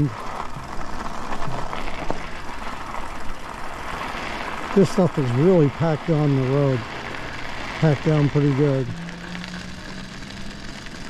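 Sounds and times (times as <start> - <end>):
tyres rolling on snow and ice: 0.0 - 11.0.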